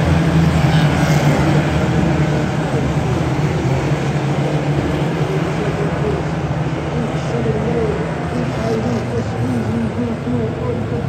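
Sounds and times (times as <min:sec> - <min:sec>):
race cars engines droning: 0:00.0 - 0:11.0.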